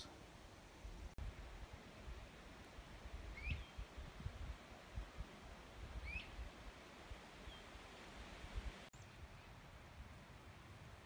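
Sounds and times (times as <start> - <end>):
faint outdoor hiss: 0.0 - 11.0
small bird chirping: 3.3 - 3.8.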